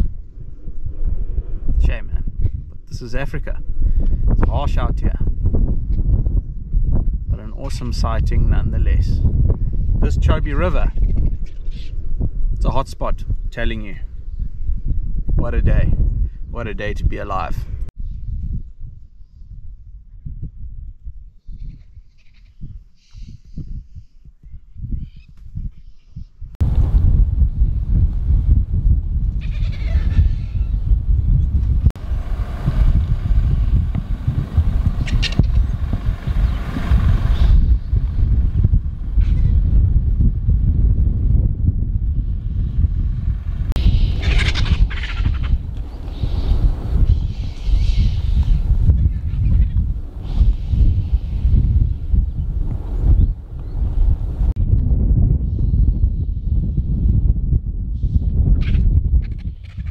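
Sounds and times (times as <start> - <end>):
vultures squabbling with harsh calls: 11.0 - 12.0, 21.6 - 23.4, 29.4 - 30.8, 35.0 - 35.7, 43.8 - 50.8, 58.6 - 59.9
loud steady low rumble: 26.6 - 59.2.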